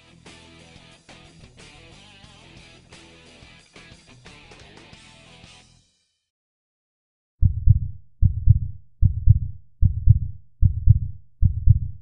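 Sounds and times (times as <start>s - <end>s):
heartbeat thumps: 7.4s - 12.0s.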